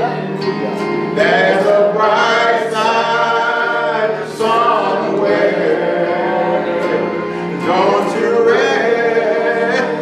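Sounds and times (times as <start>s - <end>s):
people singing gospel together: 0.0s - 10.0s.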